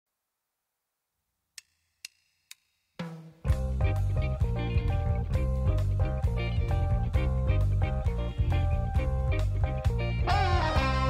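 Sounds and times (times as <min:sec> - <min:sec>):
drum-backed music: 0:01.6 - 0:11.0.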